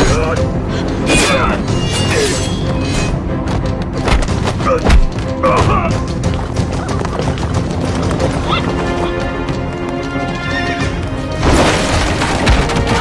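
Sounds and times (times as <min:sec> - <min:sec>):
dramatic music score: 0:00.0 - 0:13.0.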